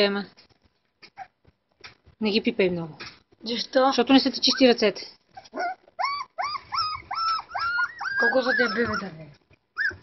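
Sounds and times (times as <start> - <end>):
puppies whimpering: 4.4 - 10.0.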